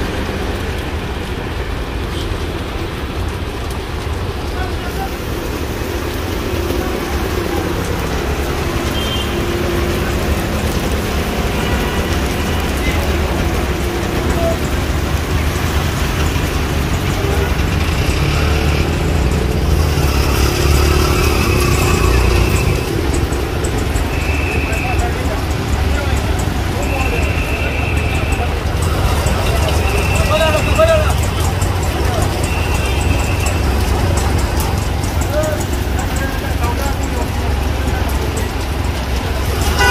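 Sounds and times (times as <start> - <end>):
heavy rain on street: 0.0 - 39.9
low rumble of traffic: 0.0 - 39.9.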